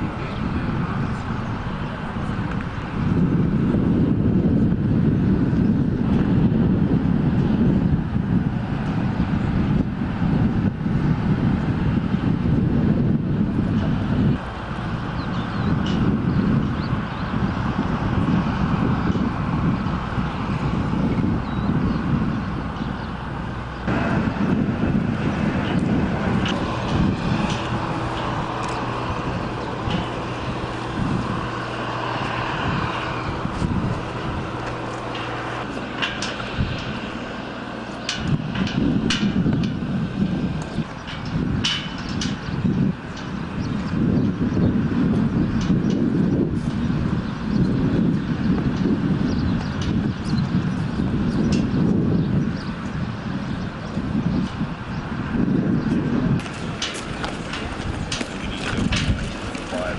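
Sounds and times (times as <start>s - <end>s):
low mechanical hum: 0.0s - 59.9s
wind buffeting microphone: 0.0s - 59.9s.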